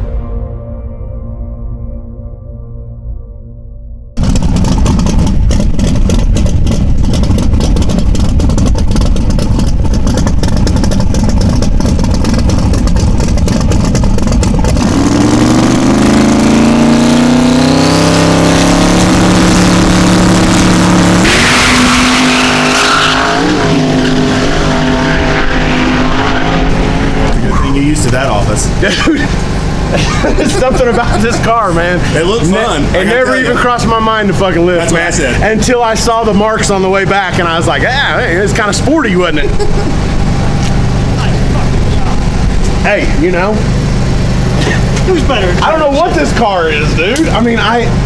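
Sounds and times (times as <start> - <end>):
intro music: 0.0 - 5.4
drag car engine crackling: 4.2 - 48.0.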